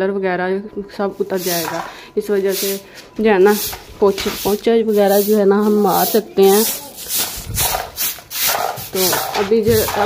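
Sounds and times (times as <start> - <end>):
broom sweeping concrete floor: 1.1 - 10.0.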